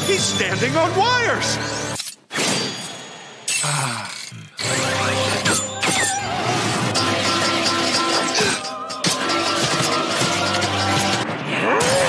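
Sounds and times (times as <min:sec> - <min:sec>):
dramatic music: 0:04.6 - 0:12.0.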